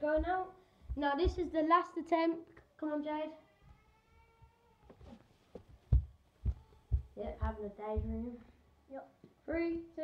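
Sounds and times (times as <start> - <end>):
barefoot footsteps on laminate floor: 0.0 - 1.7, 5.5 - 8.4.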